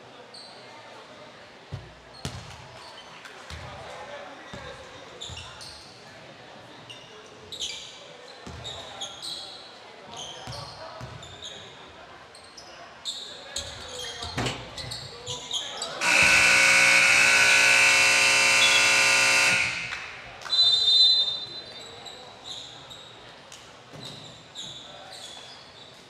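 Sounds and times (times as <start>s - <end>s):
sneakers squeaking: 1.7s - 3.6s, 5.2s - 6.0s, 6.9s - 11.7s, 12.3s - 23.2s, 24.0s - 26.0s
scoreboard buzzer blast: 16.0s - 20.5s.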